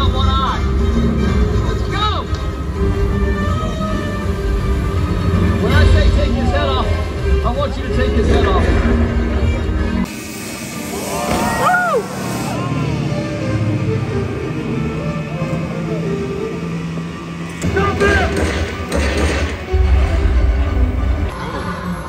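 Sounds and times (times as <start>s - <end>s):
loud soundtrack music: 0.0s - 22.0s
jet ski engine: 10.0s - 18.0s
voice-like rising and falling sounds: 10.8s - 18.3s.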